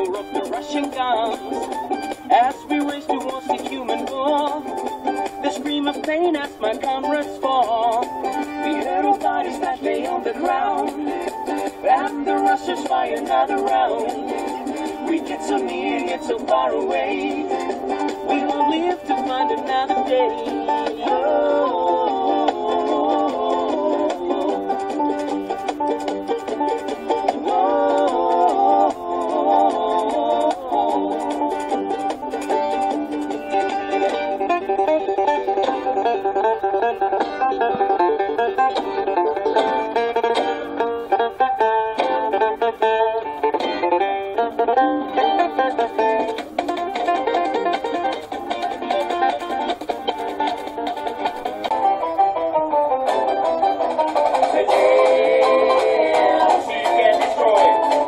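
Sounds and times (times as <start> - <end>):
fast picked acoustic string instrument: 0.0 - 58.0.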